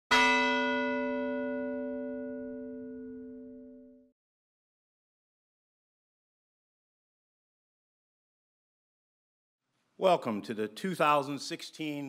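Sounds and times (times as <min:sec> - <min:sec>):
bell-like chime: 0:00.1 - 0:04.1.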